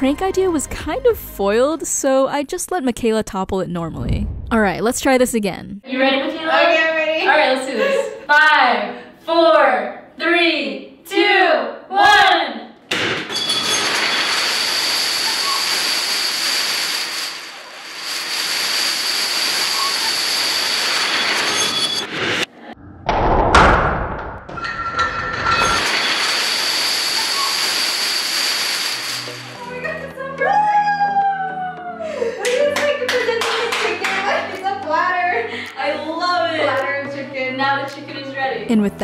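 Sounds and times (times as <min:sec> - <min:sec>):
plastic dominoes clattering down: 0:13.3 - 0:22.0, 0:25.3 - 0:29.6
person crying out excitedly: 0:30.4 - 0:32.4.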